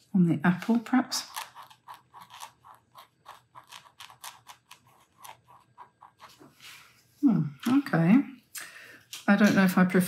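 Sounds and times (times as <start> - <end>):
marker pen scratchy stroke: 1.3 - 6.7.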